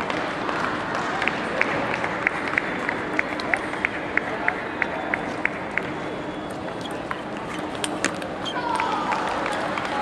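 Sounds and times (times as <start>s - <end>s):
chatter in sports hall: 0.0s - 10.0s.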